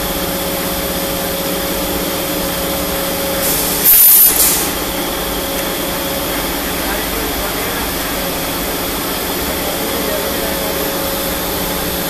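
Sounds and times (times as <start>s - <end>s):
machine humming: 0.0s - 12.0s
loud high-pitched hiss: 3.3s - 5.0s.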